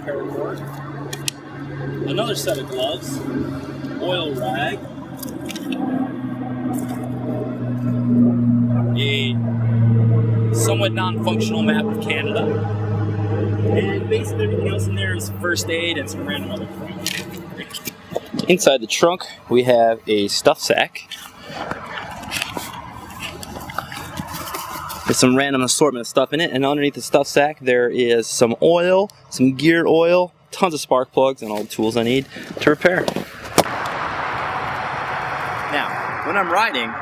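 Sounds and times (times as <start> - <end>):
highway traffic hum: 0.0 - 37.0
highway traffic hiss: 31.4 - 37.0.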